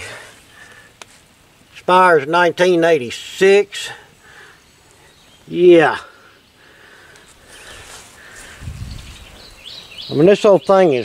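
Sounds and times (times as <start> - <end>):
faint bird chirps: 4.3 - 11.0.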